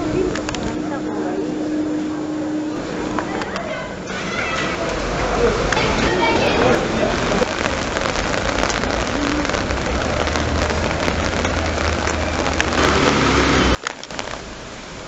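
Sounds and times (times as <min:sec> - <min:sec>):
faint street noise: 0:00.0 - 0:15.0
rain on wet paving: 0:00.0 - 0:15.0.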